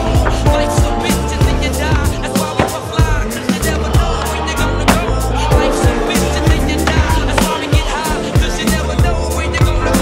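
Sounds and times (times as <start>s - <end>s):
music with steady beat: 0.0s - 10.0s
deep gliding bass notes: 3.0s - 7.5s.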